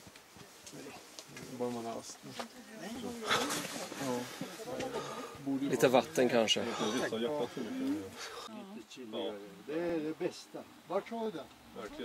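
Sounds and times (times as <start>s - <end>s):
people talking in background: 0.6s - 12.0s.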